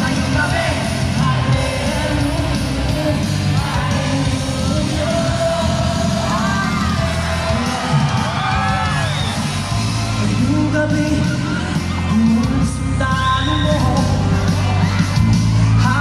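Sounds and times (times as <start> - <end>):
singing: 0.0 - 9.6, 10.2 - 16.0
audience screaming and cheering: 0.0 - 16.0
loud live music: 0.0 - 16.0.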